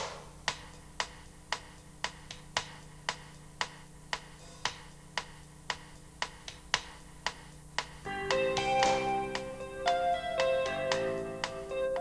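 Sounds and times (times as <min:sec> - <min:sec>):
sharp rhythmic clicks: 0:00.0 - 0:12.0.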